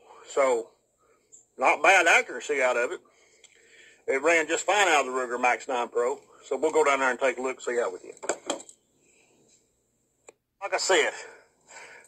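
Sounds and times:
man speaking: 0.0s - 0.7s, 1.6s - 3.0s, 4.1s - 8.3s, 10.6s - 11.4s
camera handling clicks and rustles: 8.2s - 8.8s.

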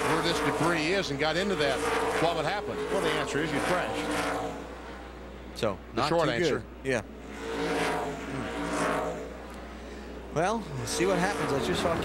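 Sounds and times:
race car engines passing: 0.0s - 12.0s.

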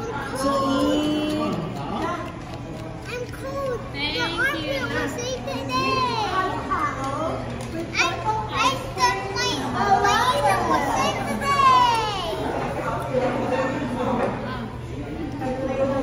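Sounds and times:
children's excited voices: 3.1s - 7.2s, 7.8s - 12.7s.

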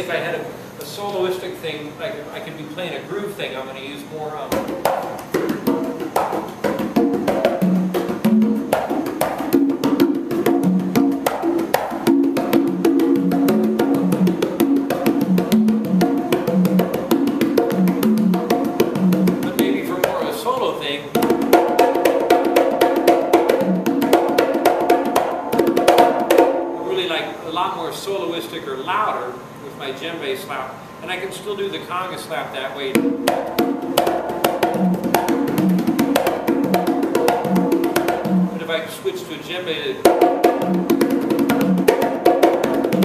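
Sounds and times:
conga drums played by hand: 4.3s - 27.2s, 32.9s - 38.8s, 40.0s - 43.0s.

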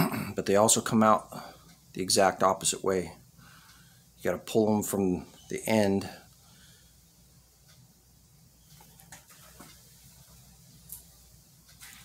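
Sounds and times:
faint clicks and rustles: 8.6s - 12.0s.

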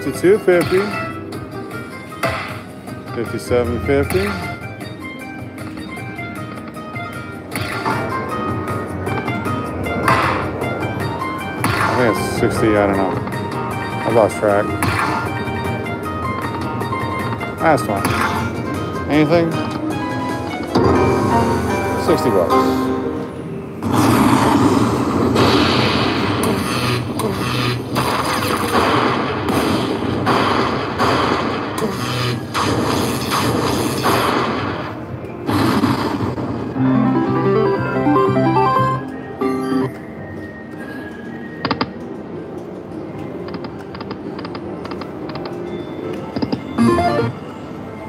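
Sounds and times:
slot machine win music: 36.7s - 39.9s, 46.8s - 47.8s
tune of stepped notes: 36.8s - 40.0s, 46.8s - 47.4s.

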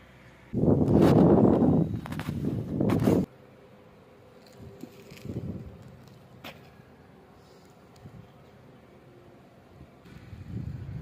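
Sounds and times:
wind buffeting microphone: 0.5s - 3.3s, 4.6s - 5.8s, 10.0s - 11.0s.

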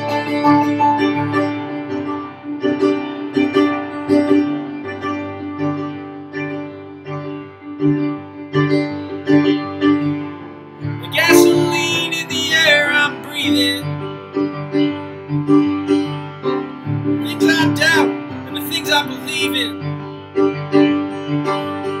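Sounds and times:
acoustic guitar playing: 11.0s - 20.4s.

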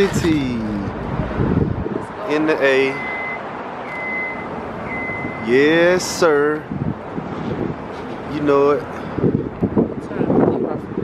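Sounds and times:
street traffic noise: 0.0s - 11.0s
reversing alarm beeping: 2.9s - 5.5s.

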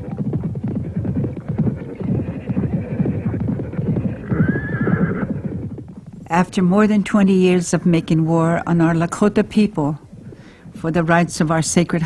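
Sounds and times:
horse whinnying: 0.0s - 6.0s.

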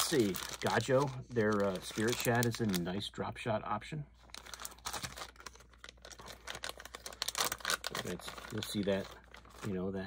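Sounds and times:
plastic bag crinkling: 0.0s - 3.0s, 4.3s - 10.0s.

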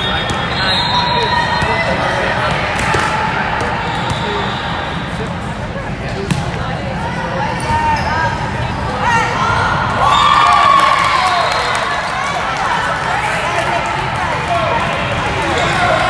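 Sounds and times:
voices echoing in hall: 0.0s - 16.0s
balls thudding on court floor: 6.3s - 6.6s.

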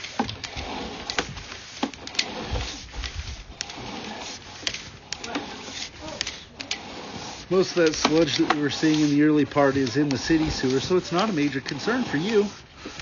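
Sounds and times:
cable reel clicking and rustling: 0.0s - 13.0s.

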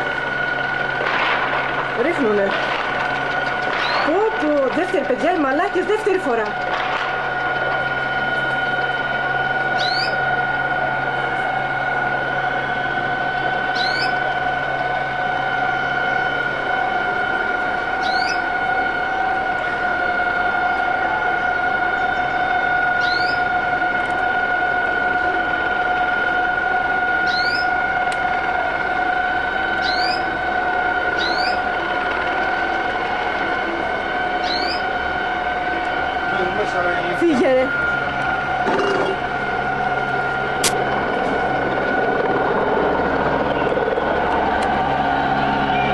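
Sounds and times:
low hum: 0.0s - 45.9s
steady high alarm tone: 0.0s - 45.9s.

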